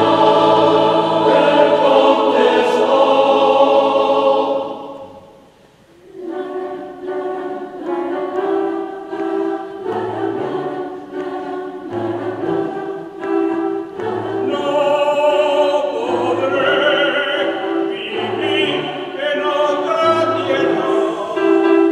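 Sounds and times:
choir singing: 0.0 - 21.9.

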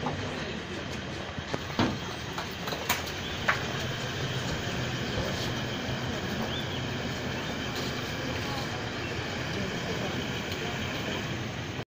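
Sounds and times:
steady background rumble: 0.0 - 11.8
people talking indistinctly: 4.9 - 11.3.

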